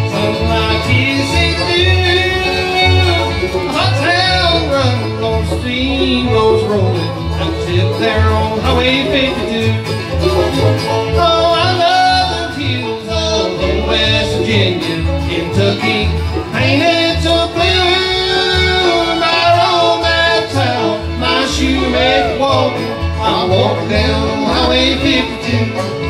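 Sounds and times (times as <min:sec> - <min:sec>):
bluegrass band playing: 0:00.0 - 0:26.0
person singing: 0:00.0 - 0:26.0.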